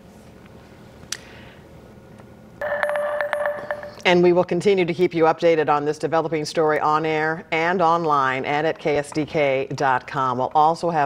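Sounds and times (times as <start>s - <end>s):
electronic news sting tones: 2.6s - 4.1s.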